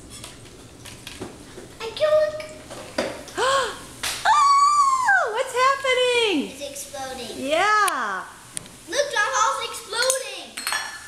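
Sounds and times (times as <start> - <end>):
high child-like voice: 1.8 - 2.6, 8.9 - 10.6.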